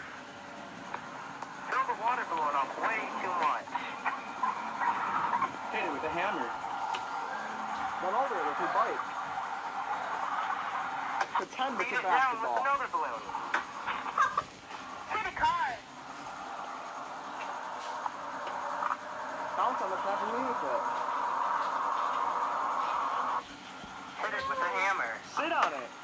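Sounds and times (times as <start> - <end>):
voices from tablet speakers: 0.0 - 26.0.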